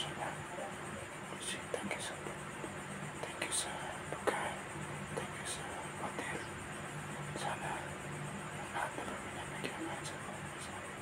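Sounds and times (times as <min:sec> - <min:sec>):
faint low hum: 0:00.0 - 0:11.0
man whispering: 0:00.0 - 0:11.0.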